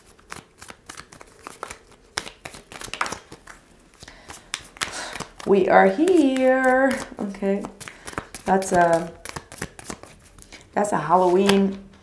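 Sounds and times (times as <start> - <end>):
cards shuffling: 0.0 - 12.0.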